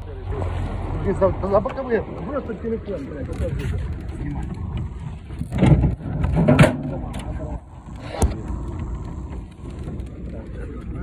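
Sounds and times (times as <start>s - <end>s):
steady low rumble: 3.8s - 11.0s.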